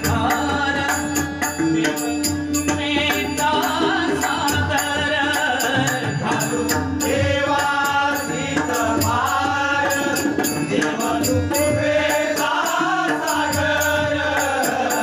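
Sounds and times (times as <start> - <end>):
hand drums playing: 0.0 - 15.0
men singing devotional song: 0.0 - 15.0.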